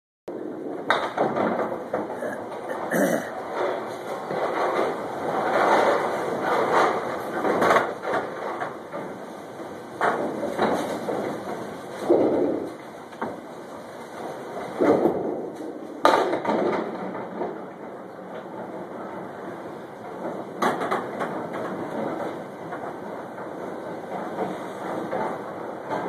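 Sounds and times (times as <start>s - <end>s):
balls rolling on wooden lanes: 0.3s - 26.0s
balls knocking pins: 0.4s - 3.2s, 10.0s - 13.4s.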